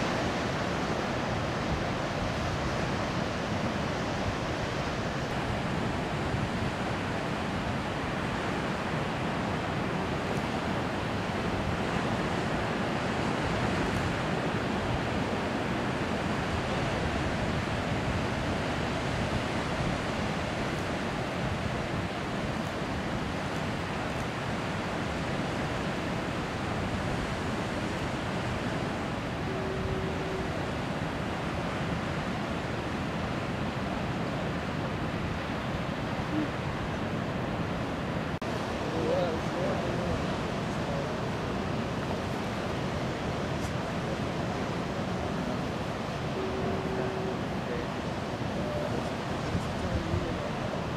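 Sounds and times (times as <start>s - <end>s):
ocean surf breaking: 0.0s - 50.9s
wind: 0.0s - 50.9s.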